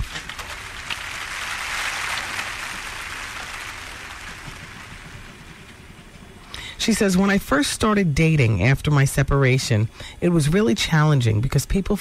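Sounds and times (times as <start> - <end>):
applause: 0.0 - 5.5.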